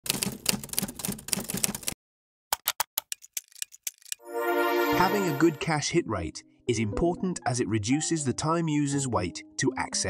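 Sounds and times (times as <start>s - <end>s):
rapid typing on keyboard: 0.0s - 2.0s, 2.6s - 4.2s.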